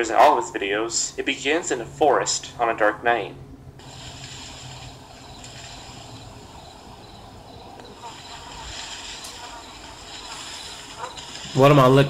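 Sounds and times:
even hiss: 3.8 - 12.0
thin high steady tones: 3.8 - 12.0.

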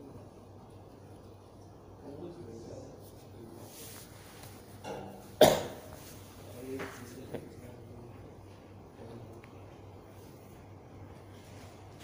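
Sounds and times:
person coughing: 5.4 - 5.9.

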